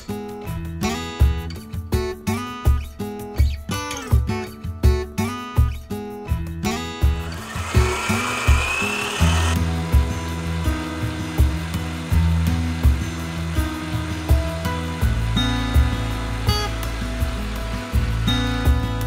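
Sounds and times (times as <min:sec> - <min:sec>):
background music with steady beat: 0:00.0 - 0:19.0
stand mixer motor whine: 0:07.2 - 0:09.7.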